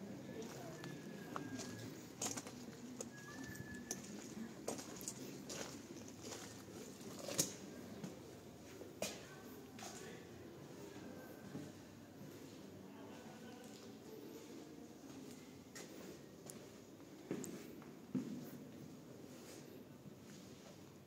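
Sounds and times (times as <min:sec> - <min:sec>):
footsteps on stone floor: 0:00.4 - 0:08.2.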